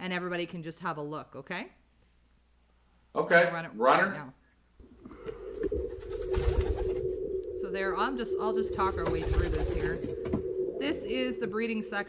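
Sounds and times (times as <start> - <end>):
pigeons cooing: 5.1 - 12.0
low handling bumps: 5.6 - 11.3.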